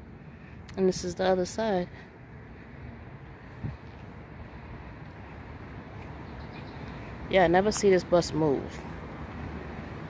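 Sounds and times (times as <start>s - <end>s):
low outdoor background rumble: 0.0s - 10.0s.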